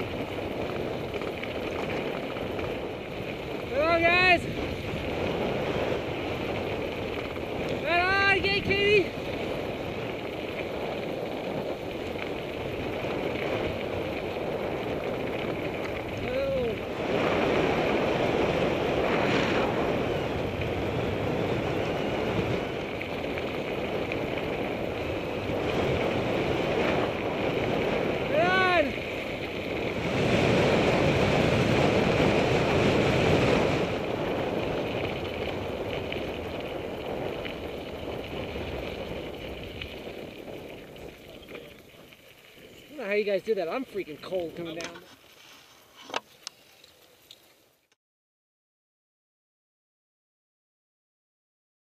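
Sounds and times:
wind rushing over microphone: 0.0 - 42.1
tyres rumbling on gravel: 0.0 - 47.4.

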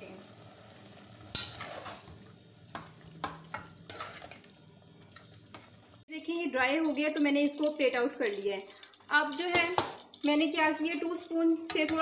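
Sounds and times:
faint sauce sizzle: 0.0 - 12.0
spoon stirring in saucepan: 1.3 - 6.0, 10.8 - 12.0.

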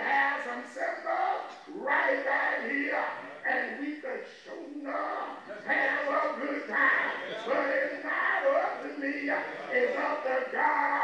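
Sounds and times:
man preaching through microphone: 0.0 - 11.0.

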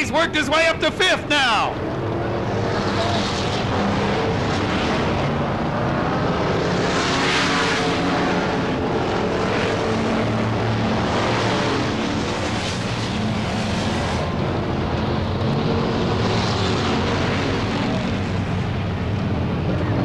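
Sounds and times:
race car engines droning: 0.0 - 20.0.

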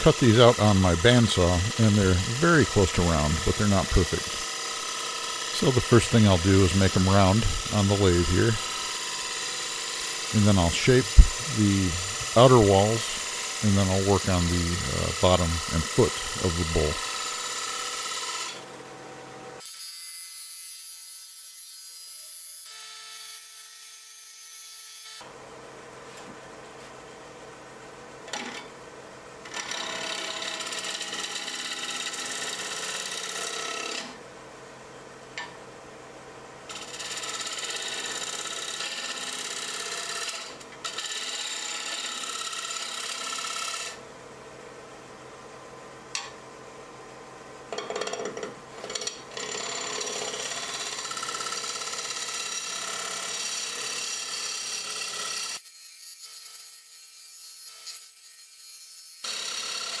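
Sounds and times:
gouge scraping spinning wood: 0.0 - 18.6, 36.7 - 44.0
lathe motor hum: 0.0 - 18.6.

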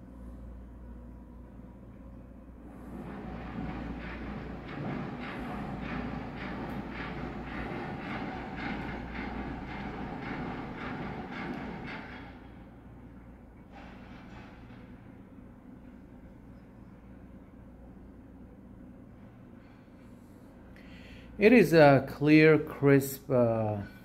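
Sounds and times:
low steady hum: 0.0 - 11.8
vehicle rhythmic clatter: 2.7 - 12.8.

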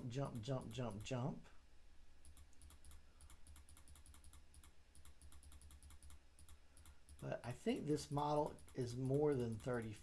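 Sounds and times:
low steady hum: 0.0 - 10.0
rapid keystrokes or mouse clicks: 0.1 - 1.4, 2.2 - 10.0.

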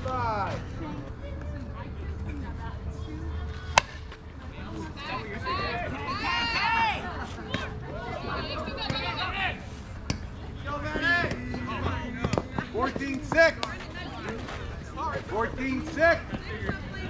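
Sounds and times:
low outdoor rumble: 0.0 - 17.0
players shouting: 5.0 - 9.6.

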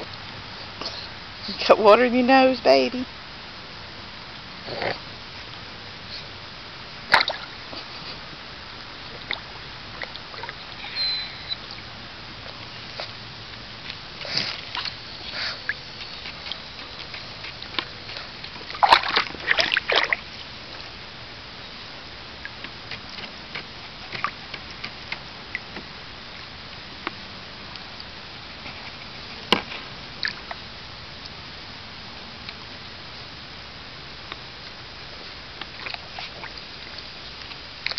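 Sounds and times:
dog splashing water: 6.9 - 10.9, 11.6 - 26.0.

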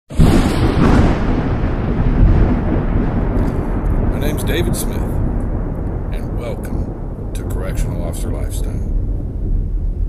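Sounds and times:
deep rumble of thunder: 0.1 - 10.0.

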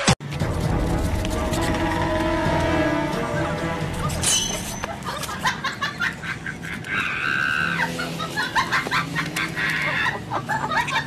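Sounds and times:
chicken clucking and squawking: 4.8 - 11.0.

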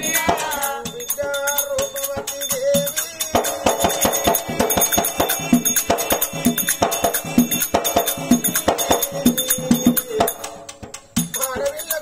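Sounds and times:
cymbal strokes: 0.0 - 12.0
drum beats: 0.0 - 12.0
jingling rattle: 0.0 - 12.0.

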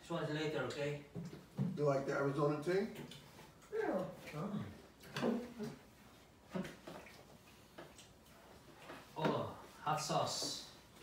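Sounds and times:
people talking: 9.2 - 10.7.

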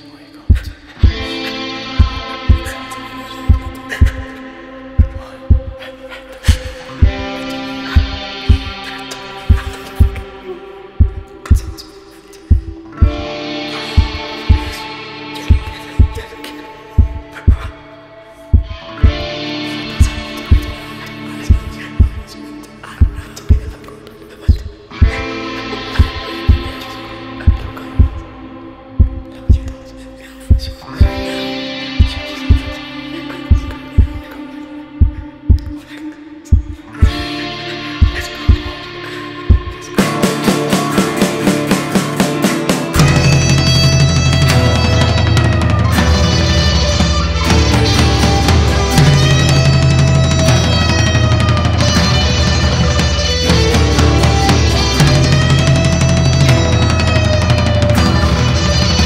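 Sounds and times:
sustained guitar notes: 0.0 - 59.0
heavy kick-drum beats: 0.5 - 1.3, 2.0 - 2.8, 3.4 - 4.3, 5.0 - 5.8, 6.5 - 8.8, 9.5 - 10.3, 11.0 - 11.8, 12.5 - 13.3, 13.9 - 14.8, 15.5 - 16.3, 17.0 - 17.7, 18.5 - 19.3, 20.0 - 20.8, 21.5 - 22.3, 24.5 - 25.3, 26.0 - 26.8, 27.5 - 28.2, 29.0 - 29.7, 32.0 - 32.8, 35.0 - 35.8, 36.5 - 37.3, 38.0 - 38.8, 39.5 - 59.0
kick drum beats: 0.5 - 1.3, 5.0 - 5.8, 12.5 - 13.2, 18.5 - 19.2, 29.0 - 29.7, 39.5 - 39.8
sustained guitar chord: 37.4 - 59.0.

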